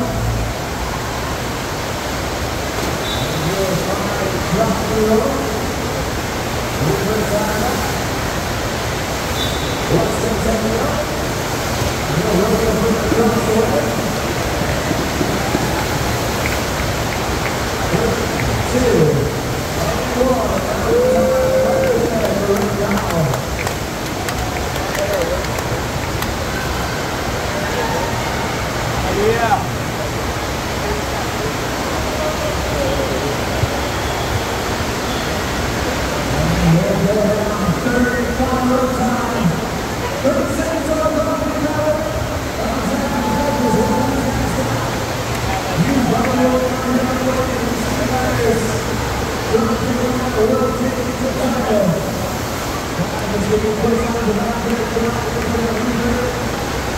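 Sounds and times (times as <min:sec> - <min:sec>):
water rushing: 0:00.0 - 0:56.9.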